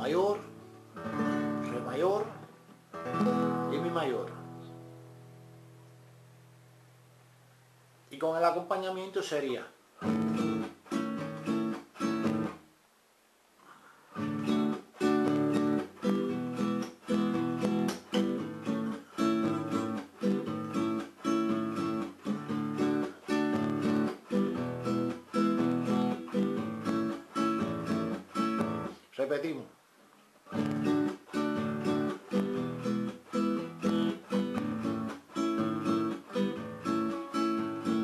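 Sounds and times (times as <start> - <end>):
acoustic guitar strumming: 0.0 - 6.3, 10.0 - 12.7, 14.1 - 29.0, 30.5 - 38.0.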